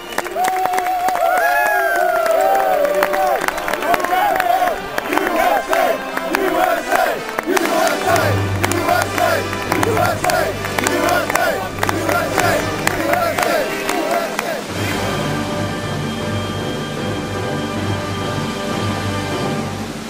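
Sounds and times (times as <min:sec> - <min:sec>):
voices singing rhythmic chant: 0:03.0 - 0:15.2.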